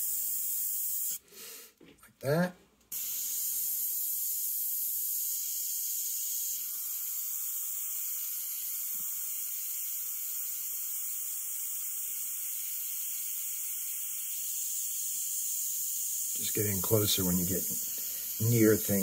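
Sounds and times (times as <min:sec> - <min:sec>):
airbrush hissing: 0:00.0 - 0:01.2, 0:02.9 - 0:19.0.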